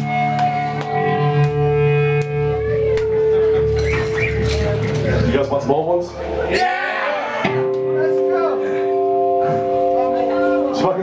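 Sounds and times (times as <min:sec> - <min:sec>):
electric guitar and bass chord ringing: 0:00.0 - 0:06.5, 0:07.3 - 0:11.0.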